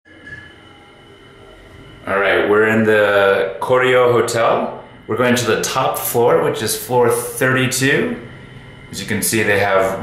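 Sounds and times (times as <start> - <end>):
faint high whining tones: 0.1 - 10.0
lift car humming: 0.1 - 10.0.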